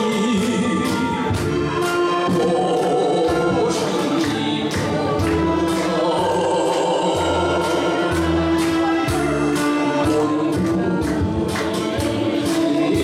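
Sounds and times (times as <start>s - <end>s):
man singing into a microphone: 0.0s - 1.4s
bass line: 0.0s - 13.0s
steady drum beat: 0.1s - 13.0s.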